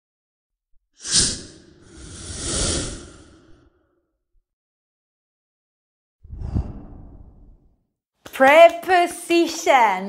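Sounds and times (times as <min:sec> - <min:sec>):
deep whoosh: 0:06.3 - 0:07.7.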